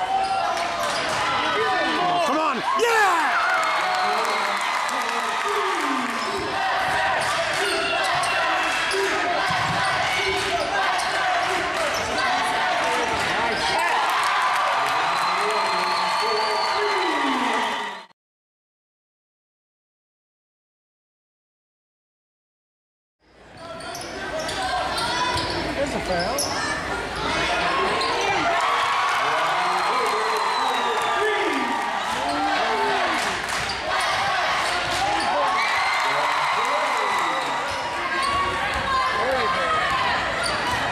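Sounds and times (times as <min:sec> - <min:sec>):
crowd voices and shouting: 0:00.0 - 0:18.1, 0:23.3 - 0:40.9
sneakers squeaking: 0:06.1 - 0:12.6, 0:23.6 - 0:26.9, 0:27.8 - 0:28.4, 0:37.4 - 0:40.9.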